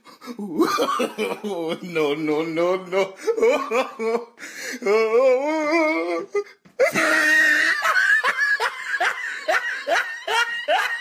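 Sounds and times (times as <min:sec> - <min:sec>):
person laughing hard: 0:00.1 - 0:02.2, 0:02.9 - 0:11.0.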